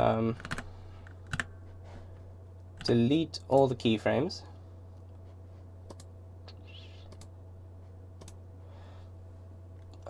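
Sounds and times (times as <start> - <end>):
steady low hum: 0.0 - 10.0
keyboard and mouse clicks: 5.9 - 6.1.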